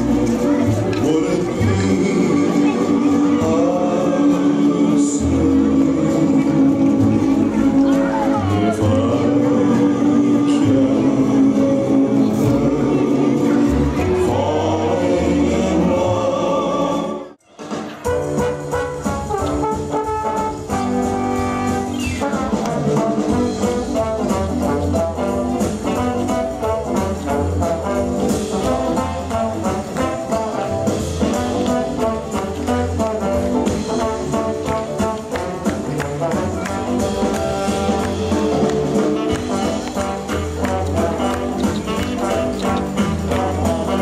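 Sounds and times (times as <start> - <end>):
jazz band playing: 0.0 - 44.0
trombone: 0.0 - 44.0
trumpet: 16.7 - 44.0.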